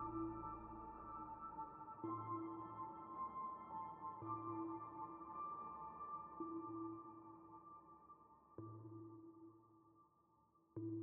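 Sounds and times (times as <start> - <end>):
ambient electronic music: 0.0 - 9.5.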